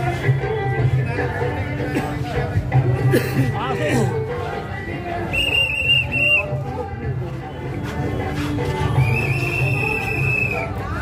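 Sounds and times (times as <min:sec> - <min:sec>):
crowd voices: 0:00.0 - 0:11.0
music: 0:00.0 - 0:11.0
high whistle: 0:05.3 - 0:06.6, 0:08.2 - 0:10.8.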